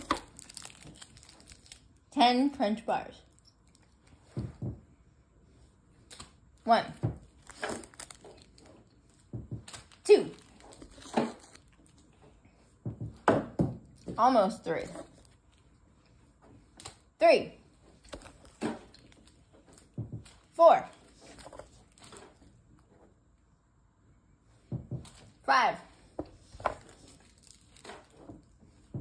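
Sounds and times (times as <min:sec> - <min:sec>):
candy wrapper crinkling: 0:00.0 - 0:02.1, 0:03.3 - 0:04.2, 0:07.3 - 0:12.0, 0:26.8 - 0:28.2.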